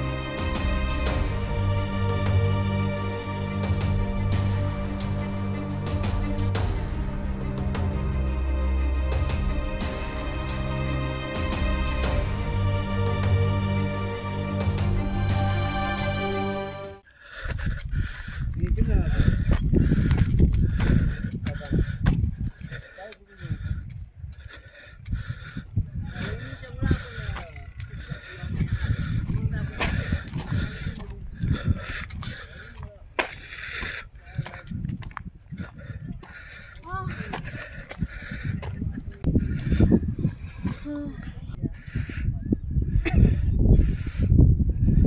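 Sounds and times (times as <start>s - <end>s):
wind buffeting microphone: 17.4s - 45.0s.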